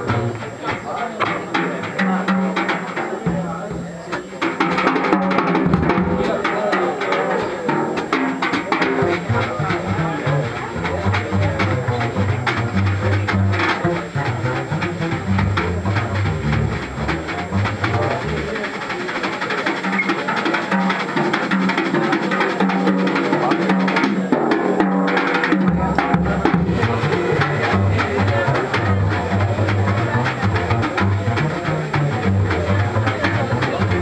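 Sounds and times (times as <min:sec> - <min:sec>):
drum kit with cymbals: 0:00.0 - 0:34.0
plucked double bass: 0:00.0 - 0:34.0.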